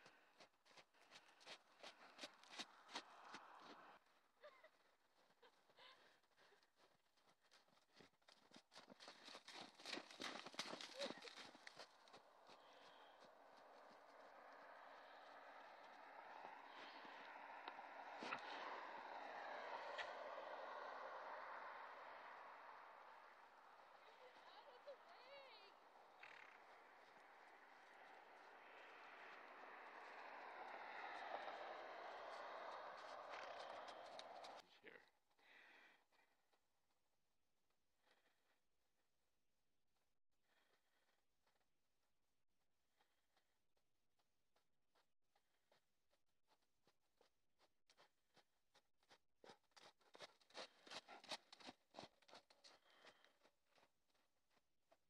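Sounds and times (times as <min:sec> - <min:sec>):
soft hoof clicks on snow: 0:00.0 - 0:36.7, 0:46.5 - 0:55.0.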